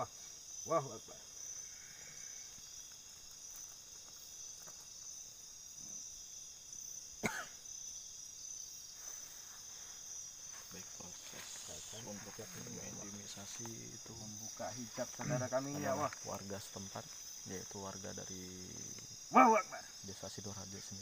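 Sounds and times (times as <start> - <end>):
night insects chirring: 0.0 - 21.0.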